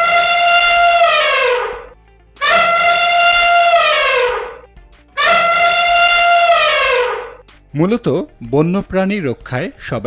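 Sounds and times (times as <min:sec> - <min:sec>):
elephant trumpeting: 0:00.0 - 0:04.6, 0:05.2 - 0:07.4.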